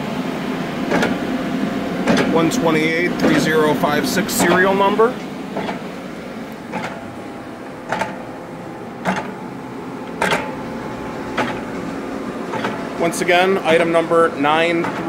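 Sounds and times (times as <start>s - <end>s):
machine hum: 0.0s - 15.0s
sharp machine knock: 0.9s - 1.2s, 2.0s - 2.5s, 3.2s - 5.9s, 6.7s - 7.2s, 7.8s - 8.4s, 9.0s - 9.5s, 10.1s - 10.7s, 11.3s - 11.8s, 12.5s - 13.0s.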